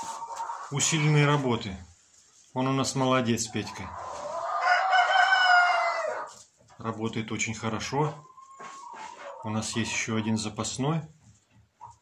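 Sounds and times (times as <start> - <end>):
rooster crowing: 4.6 - 6.3.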